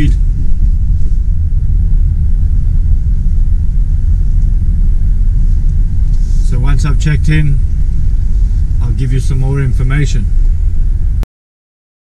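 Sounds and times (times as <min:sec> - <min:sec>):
car engine rumble: 0:00.0 - 0:11.2
road noise: 0:00.0 - 0:11.2.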